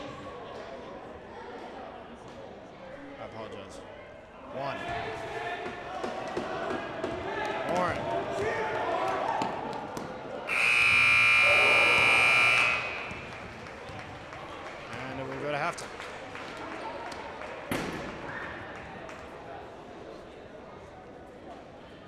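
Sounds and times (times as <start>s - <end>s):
crowd voices in a gym: 0.0s - 22.0s
scoreboard buzzer blast: 10.5s - 13.4s.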